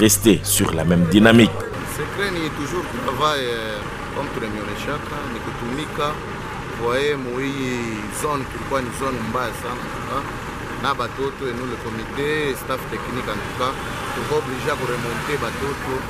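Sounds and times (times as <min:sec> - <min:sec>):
man speaking: 0:00.0 - 0:01.7
street traffic: 0:00.0 - 0:16.0.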